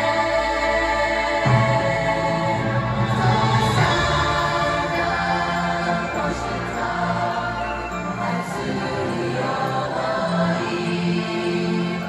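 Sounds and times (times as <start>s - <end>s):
choir singing sustained notes: 0.0s - 12.0s
live orchestra: 0.0s - 12.0s.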